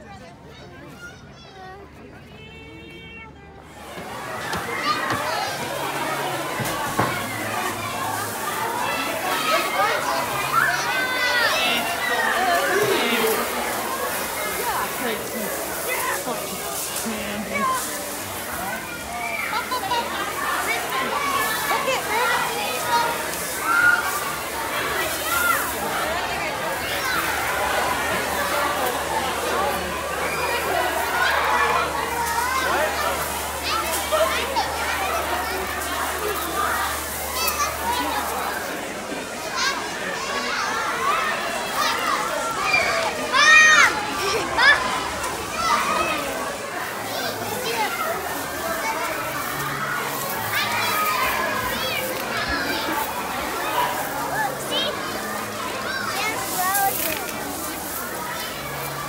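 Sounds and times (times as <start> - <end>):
children shouting and squealing: 0.0 - 59.0
corn kernels shifting: 4.1 - 38.6, 45.0 - 59.0.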